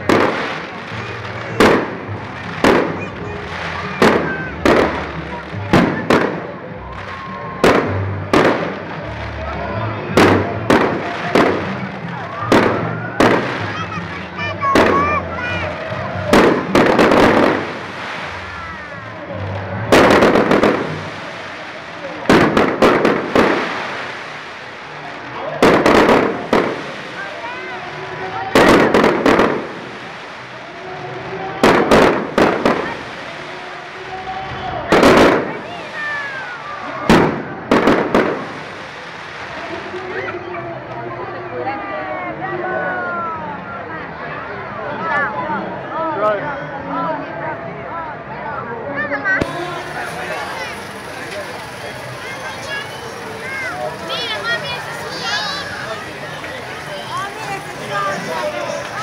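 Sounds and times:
fireworks bangs: 0.0 - 40.3, 49.4 - 59.0.

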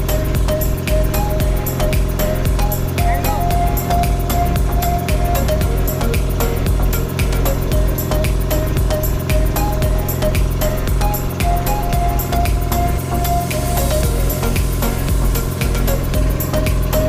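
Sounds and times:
music with steady beat: 0.0 - 17.0.

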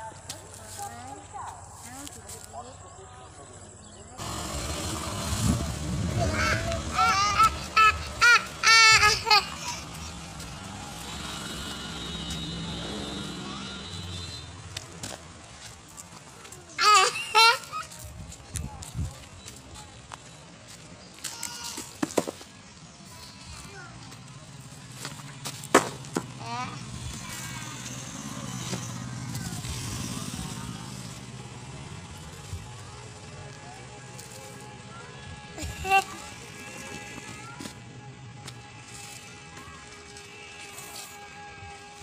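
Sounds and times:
vehicle passing: 4.2 - 20.7, 22.5 - 42.0
engine running: 4.2 - 21.0, 21.8 - 42.0.

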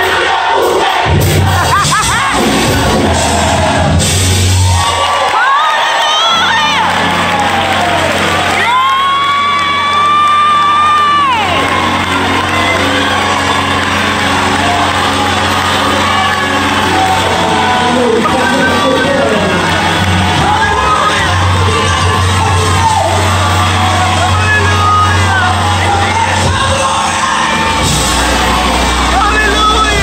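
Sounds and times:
gospel choir singing: 0.0 - 4.4, 11.5 - 30.0
congregation shouting and cheering: 0.0 - 30.0.

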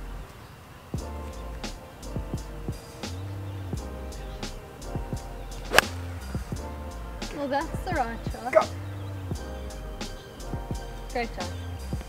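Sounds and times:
background music with bass: 0.0 - 0.3, 1.0 - 12.0
golf club striking ball: 5.7 - 6.3.

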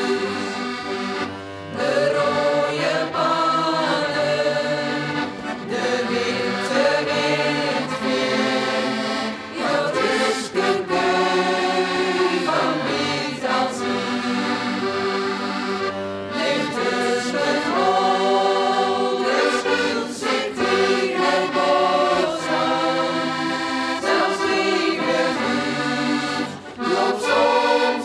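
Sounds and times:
button accordions: 0.0 - 28.0
mixed choir singing: 0.0 - 28.0.

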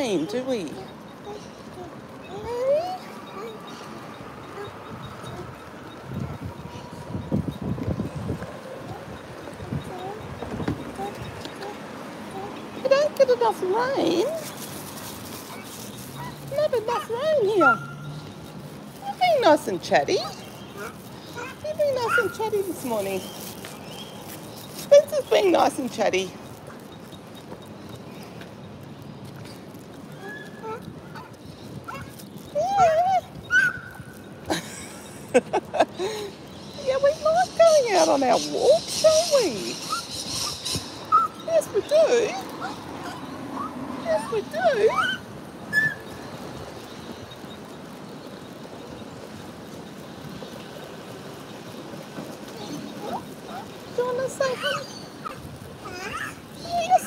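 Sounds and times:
outdoor background noise: 0.0 - 57.0
baby cooing and squealing: 1.3 - 3.6, 30.2 - 32.2, 54.6 - 56.4.

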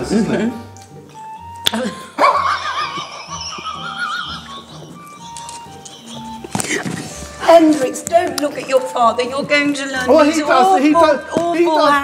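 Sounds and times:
woman's high-pitched laugh: 1.9 - 4.9.

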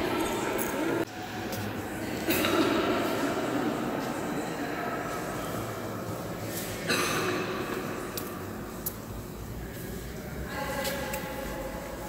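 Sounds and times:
reverberant murmur of visitors: 0.0 - 12.0.

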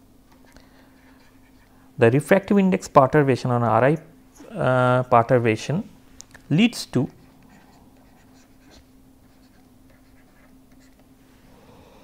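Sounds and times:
low steady hum: 0.0 - 12.0
stylus scratching on tablet screen: 1.0 - 1.7, 7.1 - 11.0.

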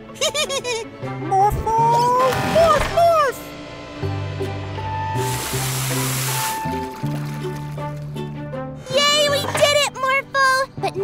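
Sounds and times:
cartoon background music: 0.0 - 11.0
water spraying from hose: 5.1 - 8.0.

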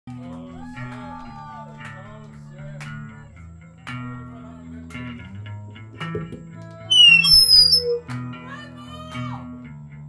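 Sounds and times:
electric guitar and bass playing: 5.0 - 8.1
loud high whistle: 6.9 - 8.1.

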